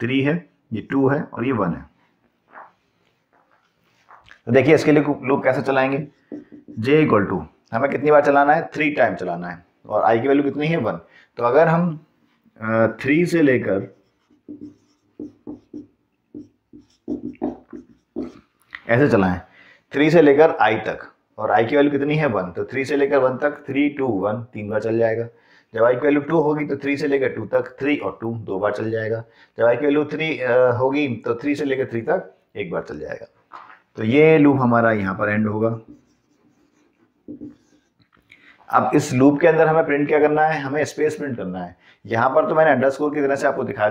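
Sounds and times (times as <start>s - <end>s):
marker pen writing on whiteboard: 2.5s - 7.2s, 13.5s - 18.6s, 35.7s - 38.3s.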